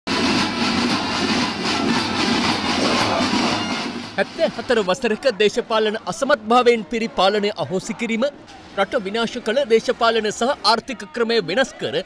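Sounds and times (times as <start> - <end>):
traditional drums beating: 0.1 - 5.7
noise of marching crowd: 0.1 - 12.0.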